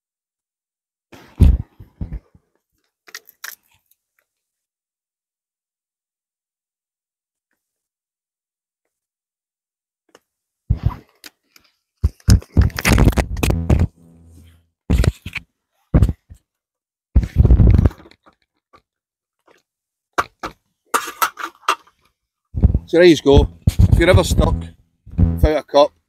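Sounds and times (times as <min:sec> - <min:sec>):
knocks and scrapes of tube handling: 0:01.2 - 0:02.4, 0:10.7 - 0:15.4, 0:20.2 - 0:22.0.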